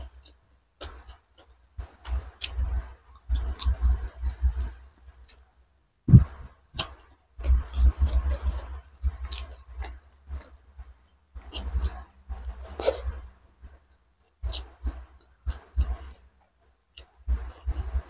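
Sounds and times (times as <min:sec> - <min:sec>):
wet chewing and mouth clicks: 0:00.0 - 0:05.4, 0:06.1 - 0:10.6, 0:11.4 - 0:18.0.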